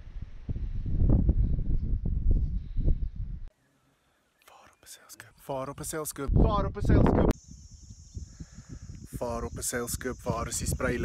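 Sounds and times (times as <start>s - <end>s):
wind rumbling on microphone: 0.0s - 3.5s, 6.2s - 11.0s
man's faint whispered breath: 8.2s - 9.1s.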